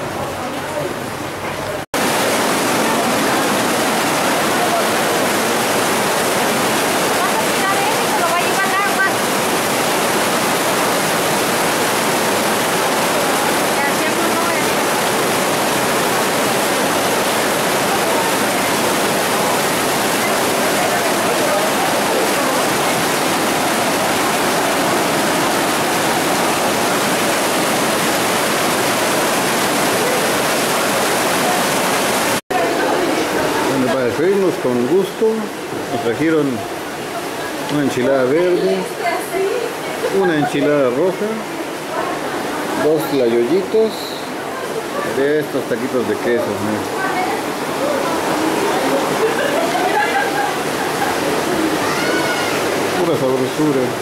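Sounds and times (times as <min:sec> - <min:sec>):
heavy rain: 0:00.0 - 0:54.0
water rushing down stone steps: 0:00.0 - 0:54.0.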